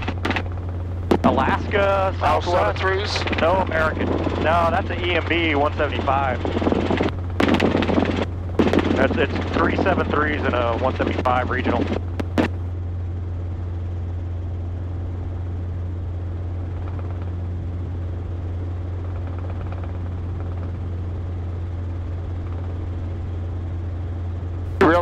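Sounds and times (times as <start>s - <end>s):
helicopter rotor and engine drone: 0.0s - 25.0s.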